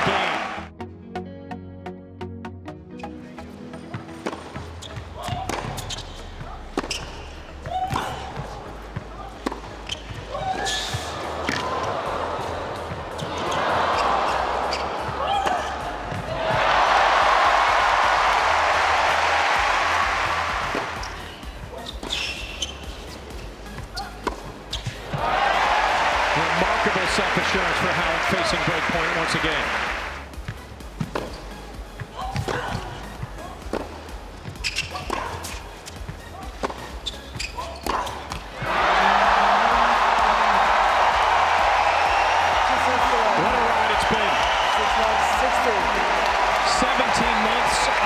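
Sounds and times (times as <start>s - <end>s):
crowd cheering and applauding: 0.0s - 0.7s, 11.1s - 21.2s, 25.0s - 30.3s, 38.5s - 48.0s
racket striking ball: 3.9s - 6.1s, 6.8s - 11.8s, 23.8s - 25.2s, 31.0s - 31.4s, 32.3s - 33.0s, 33.6s - 35.6s, 36.5s - 36.9s, 37.6s - 38.5s
ball bouncing on court: 3.9s - 11.9s, 23.7s - 25.2s, 30.4s - 38.7s.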